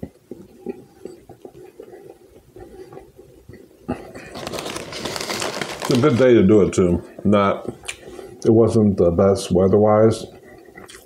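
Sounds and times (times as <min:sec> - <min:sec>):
plastic chip bag crinkling: 0:04.0 - 0:06.8
chewing with wet mouth smacks: 0:10.6 - 0:11.0.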